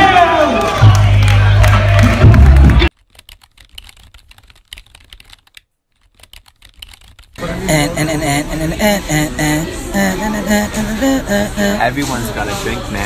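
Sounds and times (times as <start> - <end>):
voices: 7.4 - 13.0.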